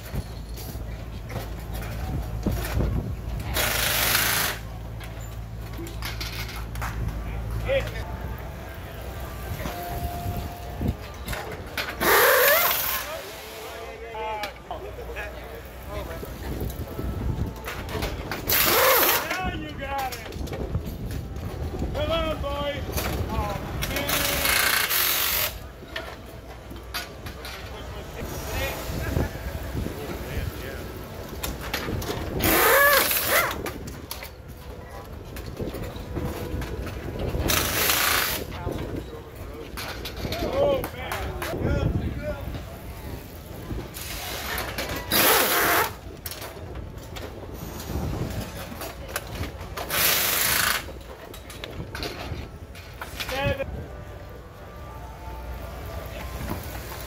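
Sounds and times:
crew voices talking: 0.1 - 20.8
pneumatic impact wrench bursts: 3.5 - 4.7, 11.9 - 13.5, 18.4 - 19.2, 24.1 - 25.6, 32.4 - 33.6, 37.5 - 38.5, 44.0 - 46.0, 49.8 - 50.9.

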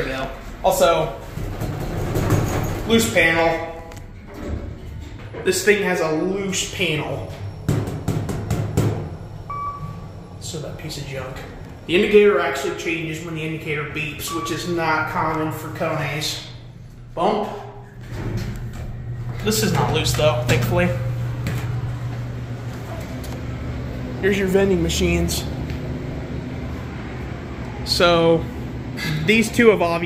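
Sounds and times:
steady low hum: 0.0 - 30.0
elevator electronic beep: 9.0 - 11.5, 13.8 - 15.5.

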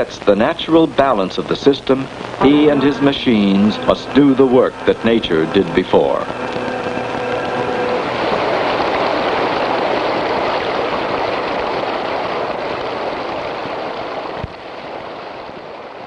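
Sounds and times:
water rushing from a pipe: 0.0 - 16.0.

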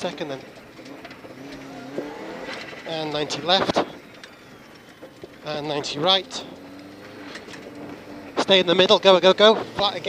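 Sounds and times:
car engine from inside cabin: 0.0 - 10.0.

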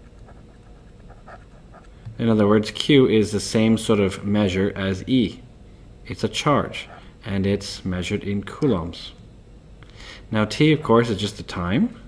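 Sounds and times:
low room hiss: 0.0 - 12.0
faint breathing: 9.8 - 10.3.

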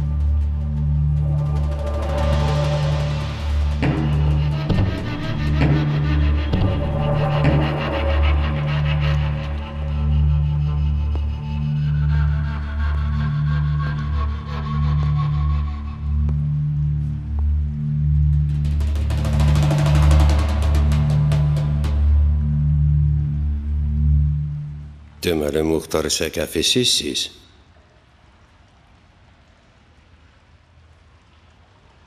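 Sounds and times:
low drum-like pulse: 0.3 - 8.5, 18.4 - 23.3.

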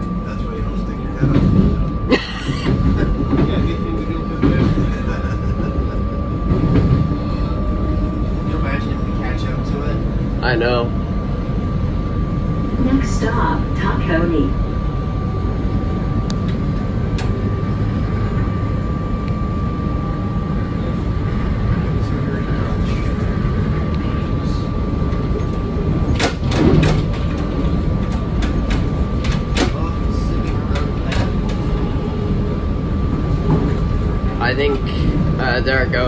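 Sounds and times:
steady whine: 0.0 - 36.0
train wheels rumbling on rails: 0.0 - 36.0.

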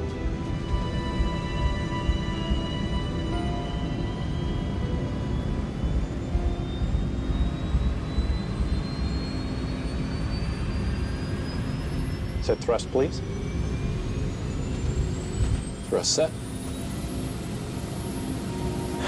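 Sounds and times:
jet engines spooling up: 0.0 - 19.0
low rumble: 0.0 - 19.0.

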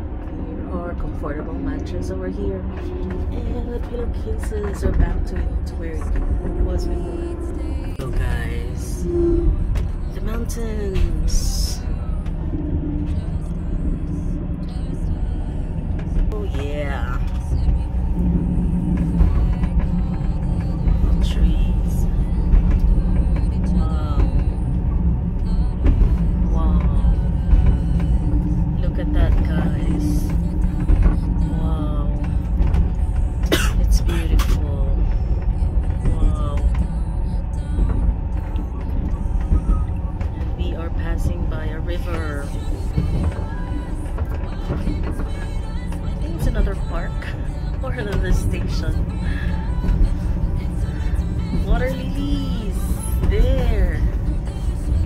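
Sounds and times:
background music with singing: 0.0 - 55.0
train rumbling on track: 0.0 - 55.0.

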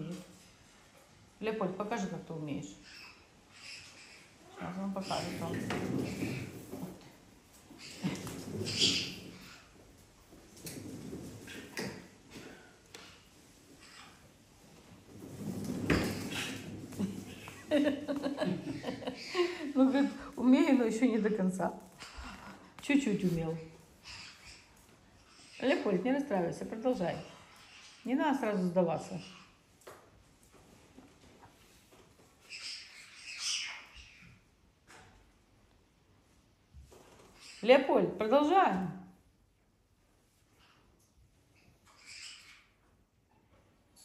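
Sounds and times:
parrot squawking: 2.8 - 6.5, 8.7 - 9.7, 24.0 - 25.8, 32.5 - 34.3, 41.8 - 42.8
wheel rolling rumble: 14.9 - 18.8.

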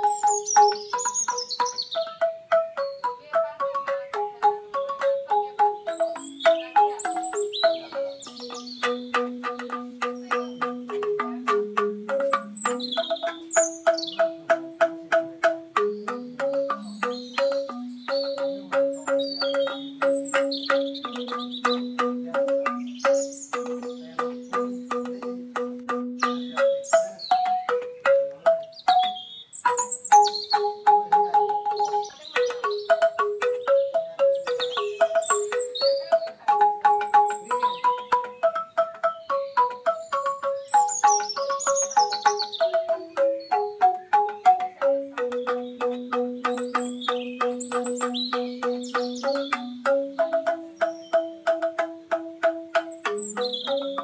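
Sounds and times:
bamboo xylophone music: 0.0 - 54.0
birds chirping: 0.0 - 54.0.

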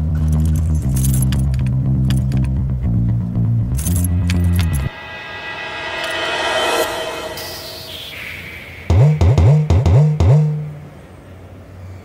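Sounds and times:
low droning bass: 0.0 - 10.8
padlock clinking on metal: 0.2 - 2.6, 3.7 - 4.9
sustained musical tone: 4.1 - 9.8.

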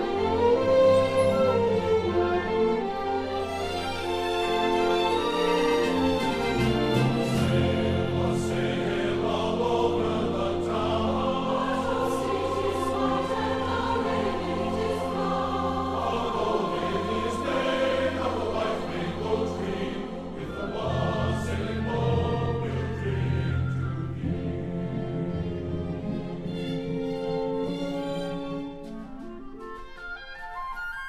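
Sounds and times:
choir singing a carol: 0.0 - 27.0.

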